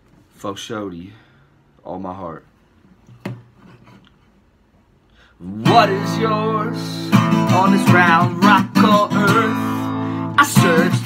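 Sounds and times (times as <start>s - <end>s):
acoustic guitar: 5.1s - 11.0s.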